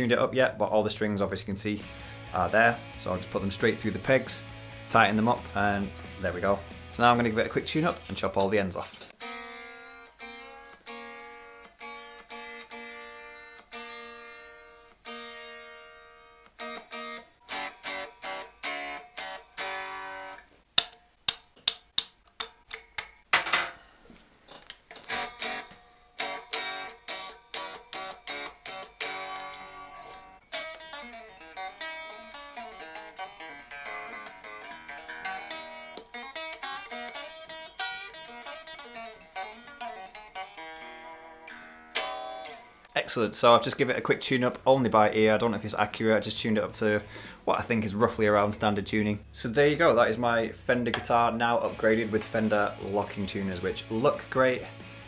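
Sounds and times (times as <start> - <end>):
guitar strums: 0.0 - 21.0, 24.6 - 55.0
electric guitar being tuned: 1.6 - 20.5, 24.9 - 55.0.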